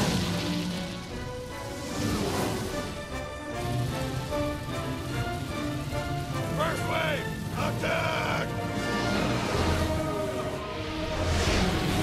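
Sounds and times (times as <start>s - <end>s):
film score music: 0.0s - 12.0s
steady rushing noise: 0.0s - 12.0s.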